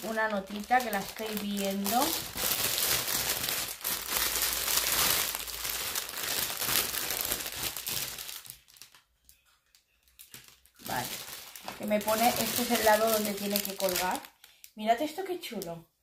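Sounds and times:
wrapping crinkling and rustling: 0:00.0 - 0:15.8.

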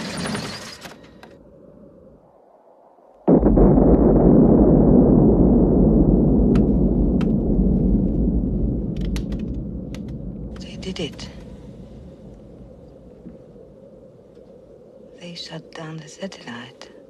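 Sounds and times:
deep rumbling boom: 0:03.3 - 0:14.7
faint clicks and crackles: 0:06.3 - 0:17.0.

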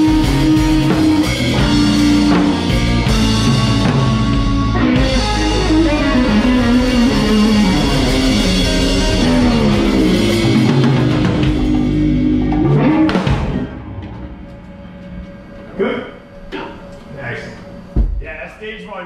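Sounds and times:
live rock band playing: 0:00.0 - 0:15.2.

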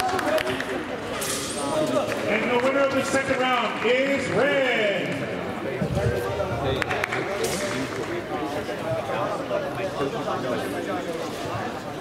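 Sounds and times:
overlapping voices talking: 0:00.0 - 0:12.0.

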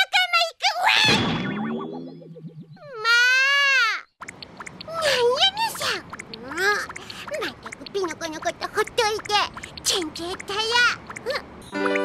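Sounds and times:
cartoon boing spring effect: 0:01.1 - 0:02.8.

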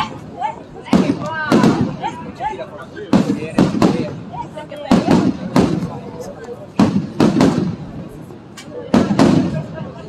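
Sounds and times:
fireworks bangs: 0:00.8 - 0:02.4, 0:03.1 - 0:08.2, 0:08.9 - 0:10.0
fireworks crackle: 0:03.1 - 0:08.2, 0:08.9 - 0:10.0.

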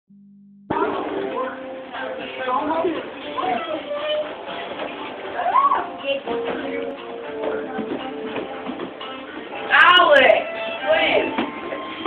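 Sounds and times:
child squealing: 0:05.4 - 0:05.9.

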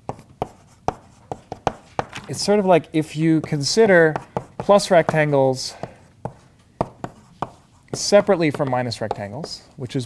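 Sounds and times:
chalk tapping on a blackboard: 0:00.0 - 0:02.2, 0:03.4 - 0:09.7.

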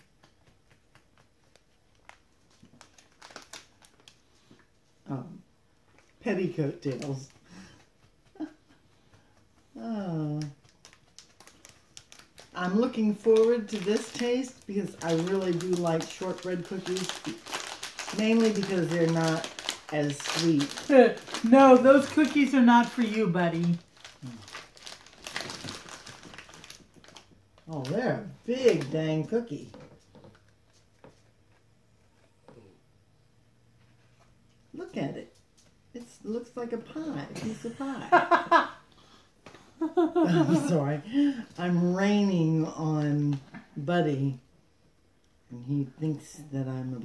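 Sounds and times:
plastic wrapping crinkling: 0:00.0 - 0:04.8, 0:05.8 - 0:07.8, 0:09.8 - 0:31.6.

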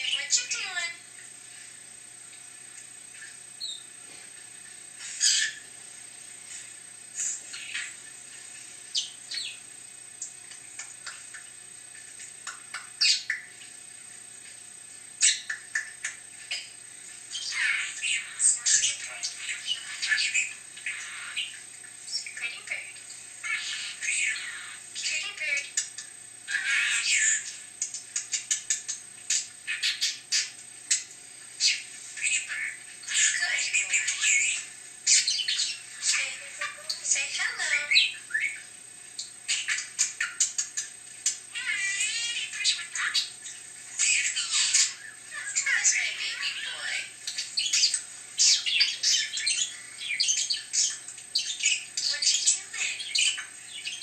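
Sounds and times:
budgerigar chirping: 0:05.2 - 0:05.6, 0:28.2 - 0:30.5, 0:31.6 - 0:38.7, 0:44.0 - 0:54.0.

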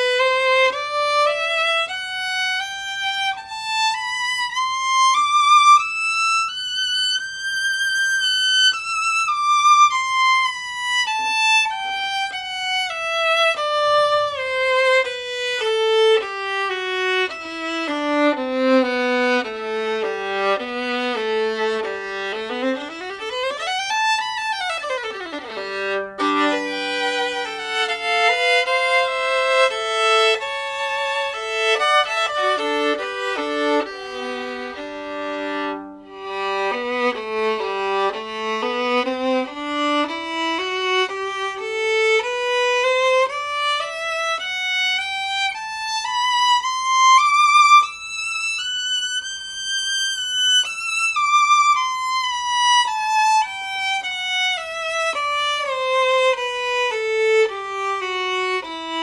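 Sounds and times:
solo violin bowed: 0:00.0 - 0:59.0.

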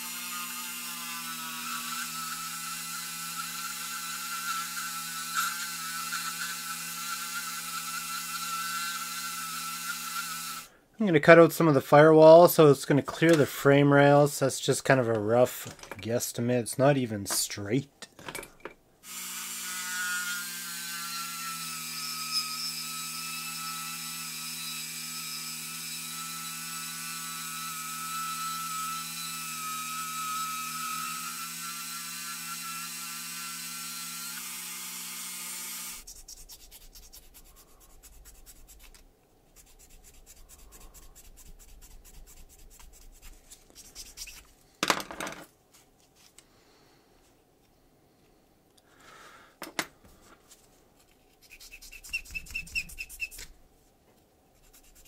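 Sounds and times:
rotary tool grinding: 0:00.0 - 0:10.7, 0:19.1 - 0:39.0, 0:51.3 - 0:53.5
rubbing small metal parts: 0:36.0 - 0:44.8, 0:50.5 - 0:53.6, 0:54.6 - 0:55.0.

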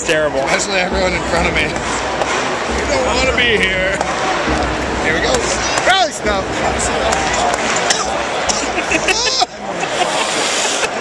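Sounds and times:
stadium crowd babble: 0:00.0 - 0:11.0.

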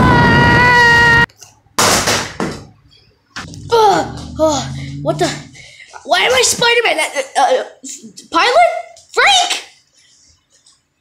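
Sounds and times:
high-pitched yell: 0:00.0 - 0:01.3.

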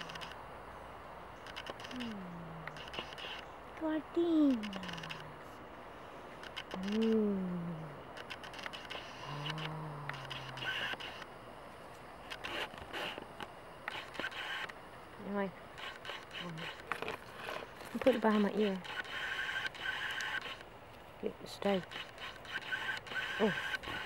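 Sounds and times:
woman humming: 0:01.9 - 0:02.8, 0:06.8 - 0:08.1, 0:09.2 - 0:10.9.

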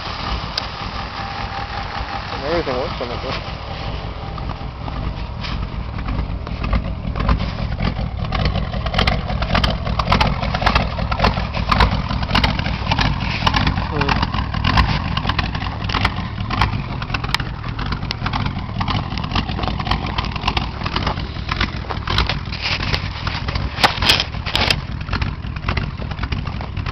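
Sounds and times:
engine idling with exhaust rumble: 0:00.0 - 0:26.9
sharp clicks and crackles: 0:05.4 - 0:26.9.

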